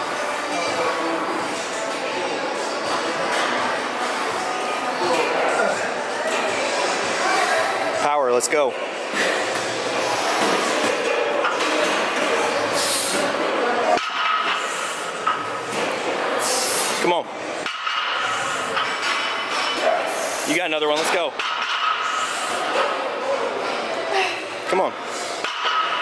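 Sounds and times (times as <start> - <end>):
gym voices: 0.0 - 26.0.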